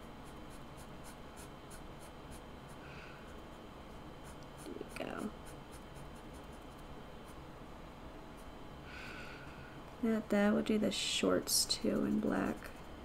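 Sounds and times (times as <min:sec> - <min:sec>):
marker scratching on paper: 0:00.2 - 0:02.8, 0:11.7 - 0:12.8.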